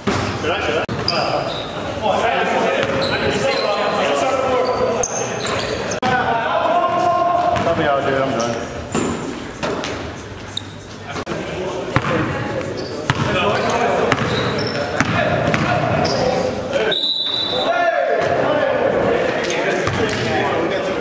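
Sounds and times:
players' voices echoing: 0.0s - 21.0s
basketball bouncing on gym floor: 13.1s - 13.4s, 14.1s - 14.4s, 15.0s - 15.8s.

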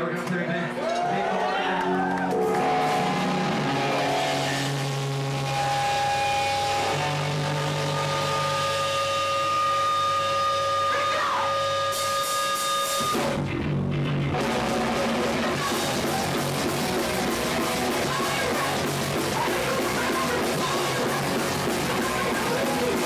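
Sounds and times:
electric guitars ringing notes: 1.8s - 23.0s
hardcore punk band playing: 1.9s - 23.0s.

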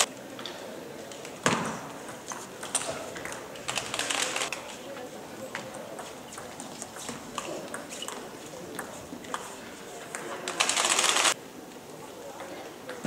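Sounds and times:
voices in sports hall: 0.0s - 13.0s
table tennis balls bouncing: 1.4s - 4.0s, 5.5s - 9.5s.

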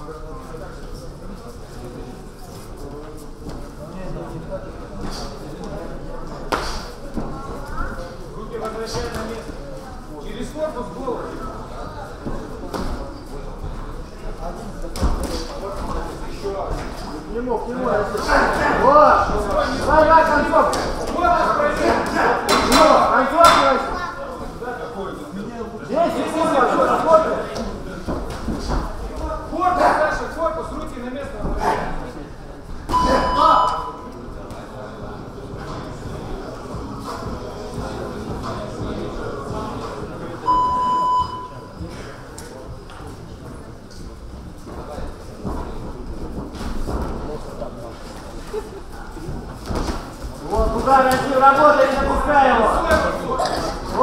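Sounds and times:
low voices of spectators: 0.0s - 54.0s.

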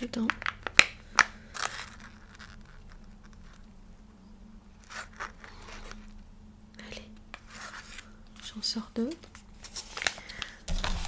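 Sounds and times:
plastic pouch crinkling: 0.0s - 3.7s, 4.8s - 6.1s
low steady hum: 0.0s - 11.0s.

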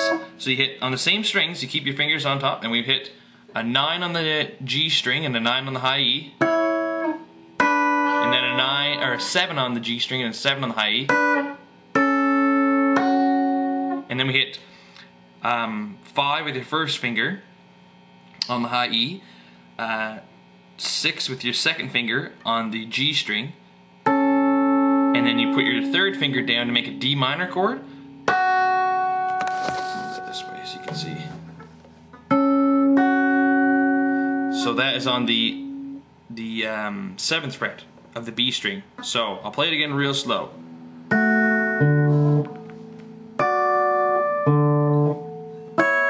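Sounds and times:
guitar plucking notes: 0.0s - 0.4s, 6.4s - 10.0s, 10.9s - 14.2s, 24.0s - 36.1s, 39.0s - 46.0s.

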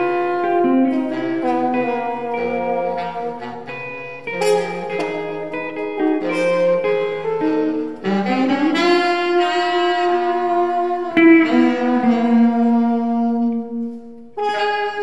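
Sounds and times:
baritone saxophone: 0.0s - 15.0s
french horn: 0.0s - 15.0s.

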